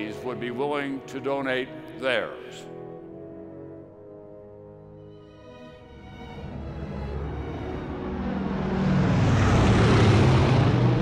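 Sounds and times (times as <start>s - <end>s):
propeller airplane flyover: 6.4s - 11.0s.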